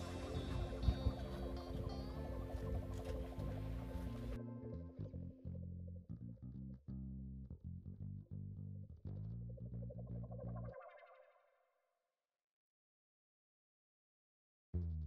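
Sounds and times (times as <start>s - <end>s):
plucked guitar music: 0.0s - 5.9s
bass: 0.0s - 11.2s, 14.8s - 15.0s.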